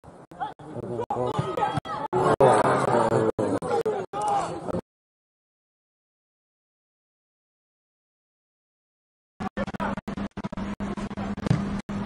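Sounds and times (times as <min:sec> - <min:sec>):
people talking indistinctly: 0:00.3 - 0:04.8.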